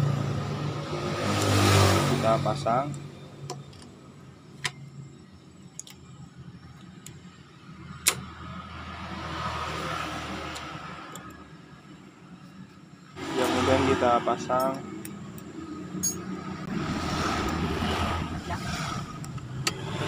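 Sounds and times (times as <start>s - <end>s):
passing vehicle: 0.0s - 3.4s, 7.7s - 11.8s, 13.1s - 20.0s
sharp metal clicks: 19.2s - 19.9s.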